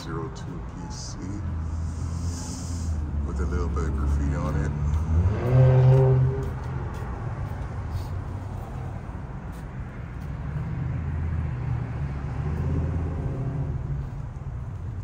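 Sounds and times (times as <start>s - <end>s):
motor vehicle passing: 0.0s - 15.0s.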